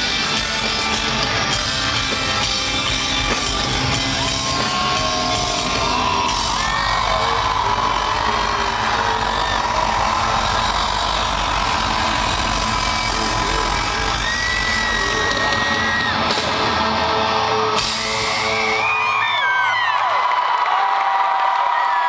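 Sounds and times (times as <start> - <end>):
rock band playing loud chords: 0.0 - 19.2
crowd cheering and whistling: 0.0 - 22.0.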